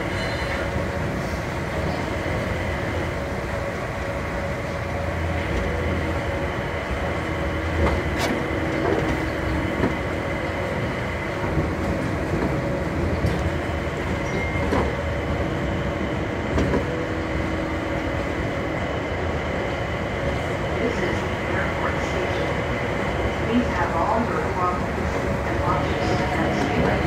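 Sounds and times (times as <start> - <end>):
train running rumble: 0.0 - 27.0.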